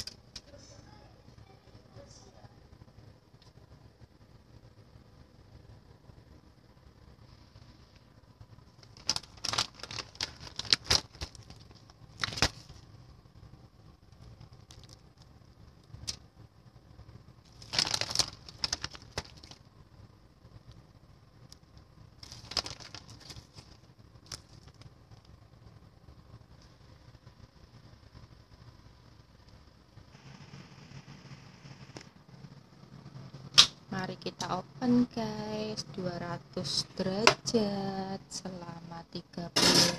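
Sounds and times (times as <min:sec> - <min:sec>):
aluminium foil crinkling: 0:08.7 - 0:12.9, 0:14.1 - 0:16.2, 0:17.4 - 0:19.7, 0:21.4 - 0:25.4.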